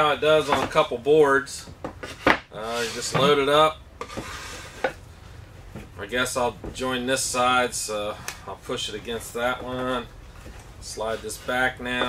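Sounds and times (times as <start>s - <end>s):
wood sliding on wood: 2.0s - 5.0s.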